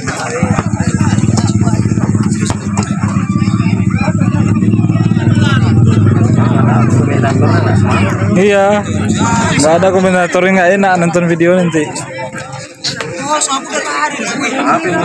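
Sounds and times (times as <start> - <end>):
small engine running: 0.0 - 10.0
faint voices: 0.0 - 15.0.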